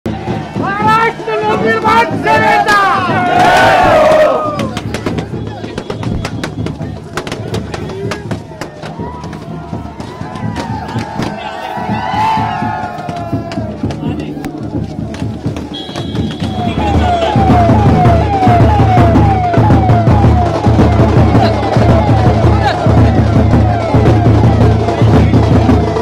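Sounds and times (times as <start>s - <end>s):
crowd shouting and cheering: 0.0s - 26.0s
drumming: 0.1s - 26.0s
music: 0.1s - 26.0s
police siren wailing: 9.0s - 25.9s.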